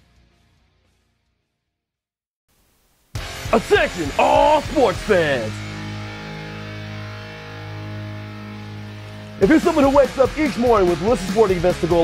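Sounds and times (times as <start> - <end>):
voice-over speaking: 3.5 - 5.6.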